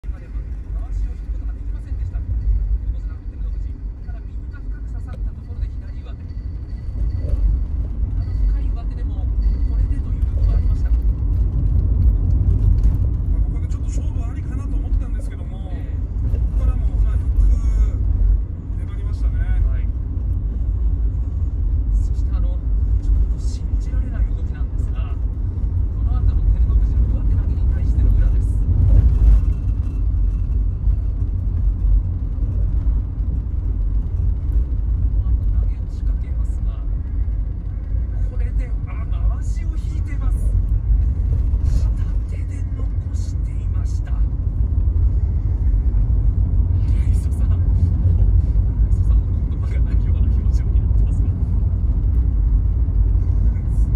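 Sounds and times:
car cabin rumble: 0.0 - 53.9
television commentary on car audio: 0.0 - 53.9.

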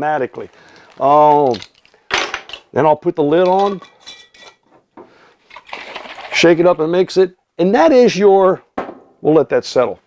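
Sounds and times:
glass jar and lid clinking: 3.4 - 4.6.

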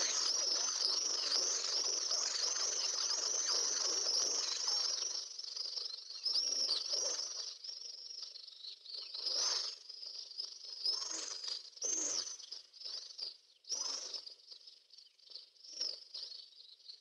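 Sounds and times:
small birds chirping: 0.0 - 17.0.

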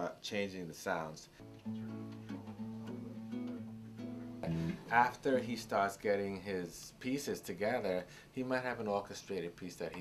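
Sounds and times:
fingerpicked acoustic guitar: 1.4 - 5.7.

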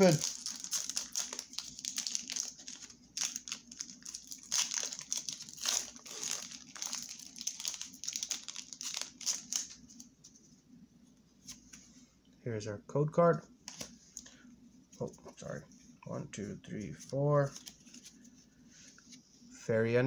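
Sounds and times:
foil wrapper crinkling: 0.0 - 10.1.

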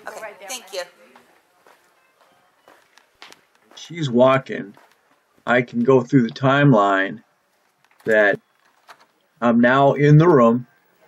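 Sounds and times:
faint voices: 0.0 - 4.8.

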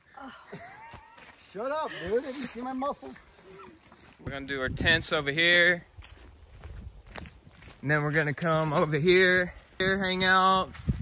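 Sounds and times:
footsteps on dry leaves: 0.8 - 11.0.

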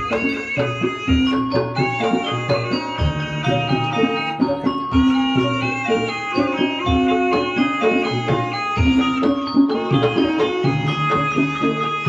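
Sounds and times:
hand drum: 0.0 - 12.0
pitched metal percussion: 0.0 - 12.0.

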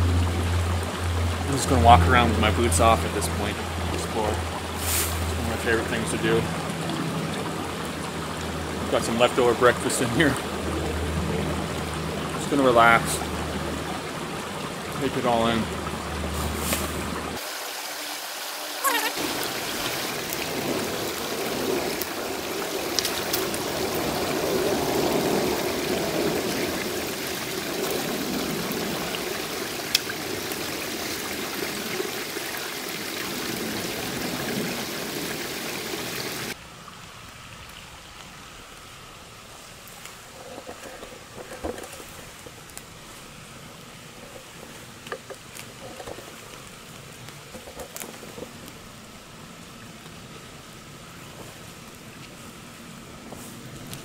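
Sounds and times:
creek water rushing and trickling: 0.0 - 54.0
small crackles and snaps: 22.9 - 23.6, 39.8 - 42.9, 44.4 - 48.8, 53.7 - 54.0.

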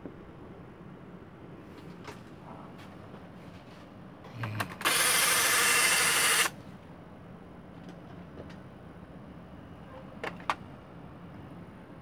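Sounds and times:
toy clicks: 4.6 - 6.5.

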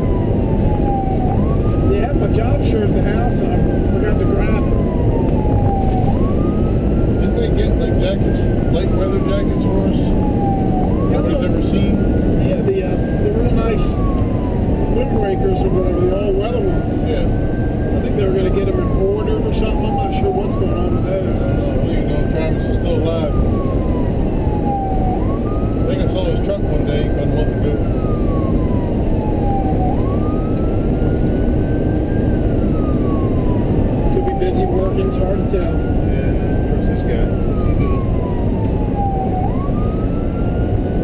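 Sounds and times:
ambulance siren wailing: 0.0 - 41.0
diesel engine rumble: 0.0 - 41.0
road noise: 0.0 - 41.0.

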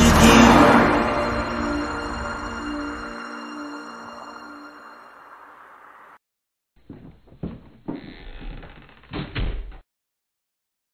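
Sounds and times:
dull thumps and knocks: 6.8 - 8.0.

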